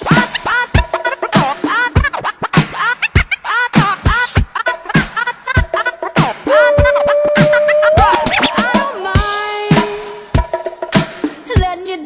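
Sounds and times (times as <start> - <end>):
turntable scratching: 0.0 - 11.9
hip-hop drum beat: 0.0 - 12.0.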